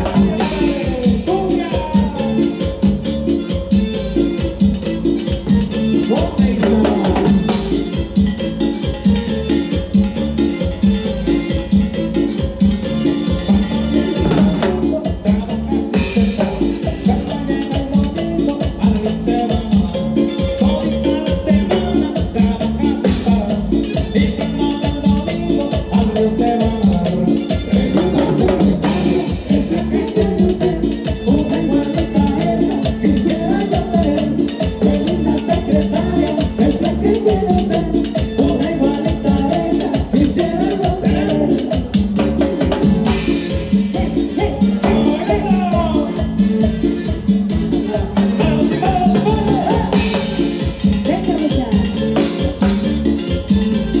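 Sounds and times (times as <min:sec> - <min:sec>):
latin dance band music: 0:00.0 - 0:54.0.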